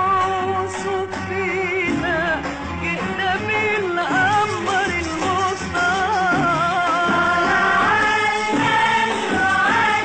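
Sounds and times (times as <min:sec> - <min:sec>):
musical accompaniment: 0:00.0 - 0:10.0
choir singing devotional song: 0:06.9 - 0:10.0.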